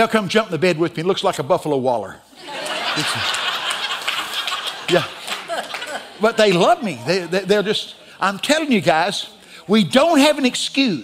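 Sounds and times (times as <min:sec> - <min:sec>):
roomful of people laughing: 0:02.3 - 0:08.0.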